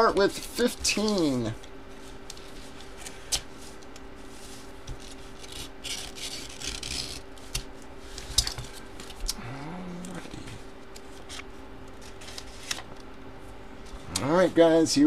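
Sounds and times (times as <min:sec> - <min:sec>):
paper rustling and scraping: 0:00.2 - 0:09.2, 0:10.1 - 0:12.9
blade cutting paper envelope: 0:04.9 - 0:07.8.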